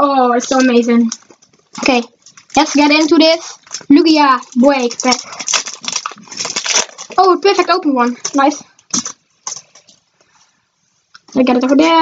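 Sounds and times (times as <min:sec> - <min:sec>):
trading cards rustling: 0:00.4 - 0:10.3.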